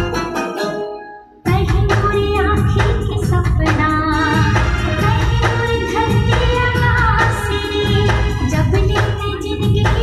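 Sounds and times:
film song with singing: 1.4s - 10.0s.

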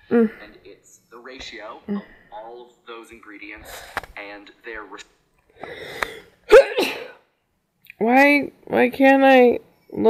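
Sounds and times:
drawn-in breath: 5.6s - 6.4s
person sneezing: 5.7s - 7.2s.

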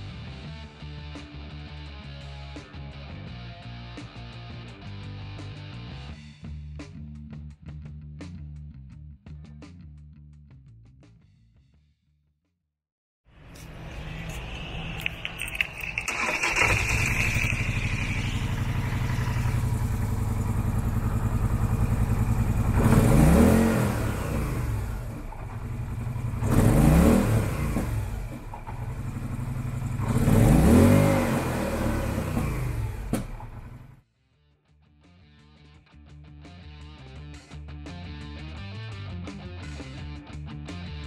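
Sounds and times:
engine revving: 13.6s - 34.0s
engine idling: 14.1s - 31.0s, 32.0s - 34.0s.

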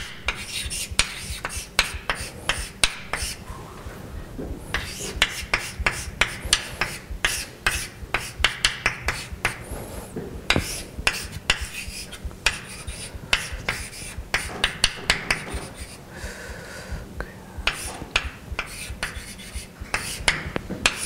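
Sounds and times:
chalk scratching on blackboard: 0.0s - 3.4s, 4.7s - 16.0s, 17.6s - 21.0s
chalk tapping on blackboard: 0.0s - 3.4s, 4.7s - 21.0s.

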